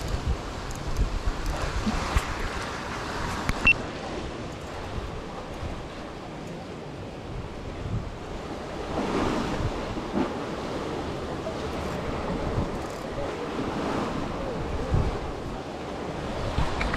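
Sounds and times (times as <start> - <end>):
wind buffeting microphone: 0.0 - 6.3, 6.9 - 16.9
sea water washing against pier: 0.0 - 16.9.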